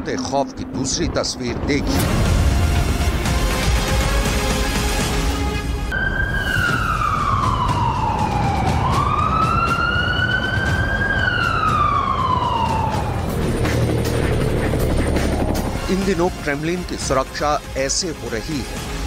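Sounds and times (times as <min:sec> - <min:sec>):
emergency siren wailing: 0:05.9 - 0:15.9
steady low rumble: 0:12.8 - 0:16.6.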